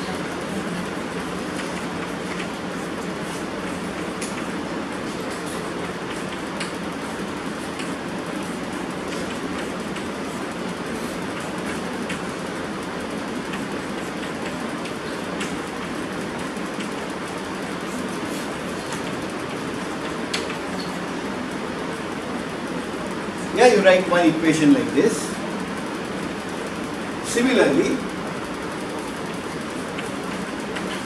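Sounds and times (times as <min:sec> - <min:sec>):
steady rushing background noise: 0:00.0 - 0:31.0.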